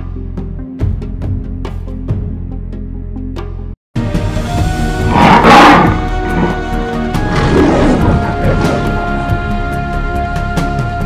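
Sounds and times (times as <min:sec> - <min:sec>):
dramatic soundtrack music: 0:00.0 - 0:11.0
lion roaring: 0:05.0 - 0:09.3.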